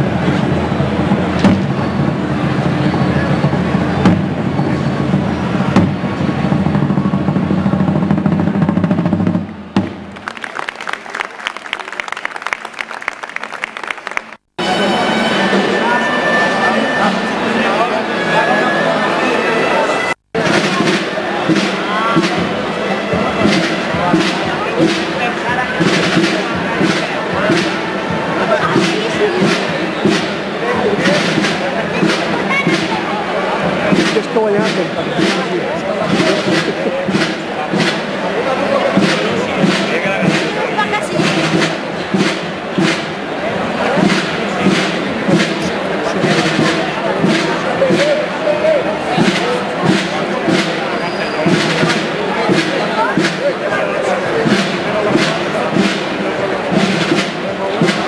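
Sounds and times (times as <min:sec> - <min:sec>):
voices: 0:00.0 - 0:09.1, 0:14.6 - 0:58.0
music: 0:00.0 - 0:10.2, 0:14.6 - 0:58.0
regular beat: 0:20.3 - 0:58.0.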